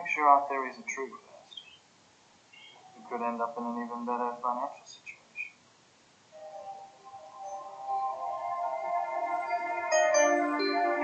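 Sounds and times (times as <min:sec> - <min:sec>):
soft background music: 0:06.4 - 0:11.0.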